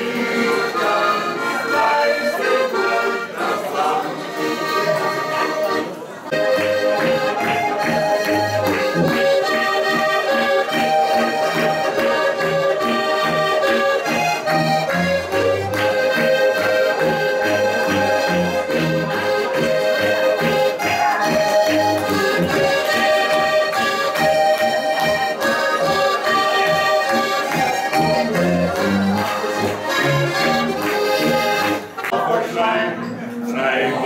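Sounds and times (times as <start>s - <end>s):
button accordions playing folk tune: 0.0s - 32.1s
voices: 0.0s - 34.0s
tuba pulsing bass: 4.6s - 31.8s.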